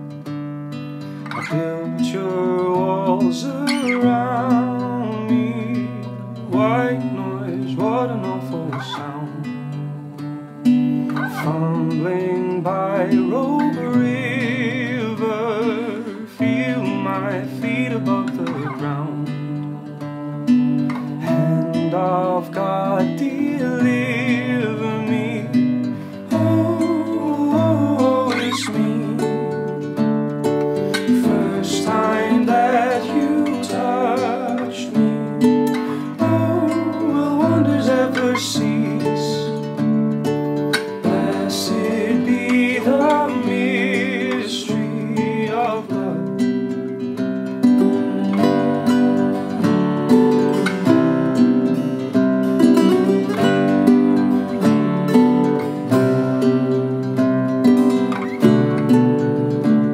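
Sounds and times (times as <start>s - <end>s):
fingerpicked classical guitar: 0.0s - 59.9s
man singing: 1.3s - 10.2s, 11.2s - 20.2s, 20.9s - 30.0s, 30.8s - 39.9s, 40.7s - 56.6s.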